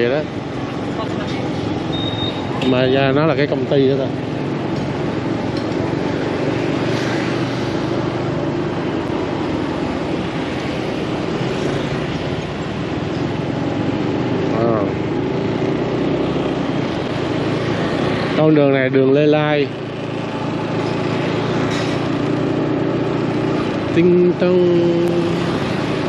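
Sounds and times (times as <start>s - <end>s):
road and wind noise: 0.0s - 26.0s
motorbike engine running: 0.3s - 26.0s.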